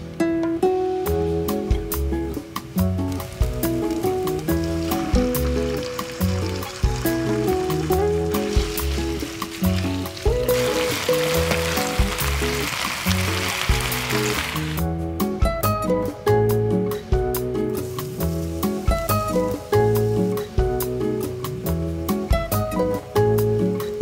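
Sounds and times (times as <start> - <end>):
light acoustic music: 0.0 - 24.0
food sizzling in a pan: 2.6 - 14.8, 17.7 - 21.6.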